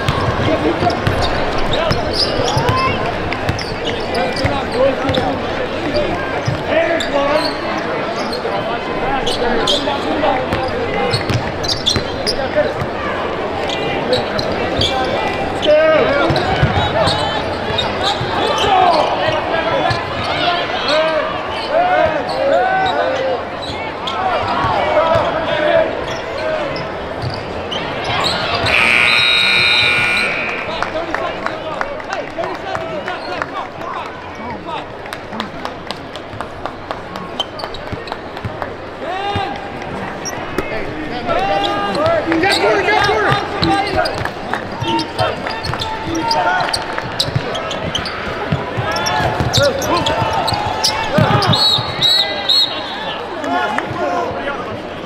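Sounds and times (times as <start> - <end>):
arena crowd voices: 0.0 - 55.0
high-pitched tone: 28.6 - 31.0.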